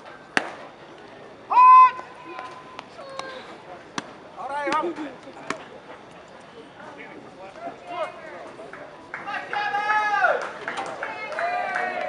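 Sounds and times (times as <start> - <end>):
person shouting a call: 1.5 - 3.4.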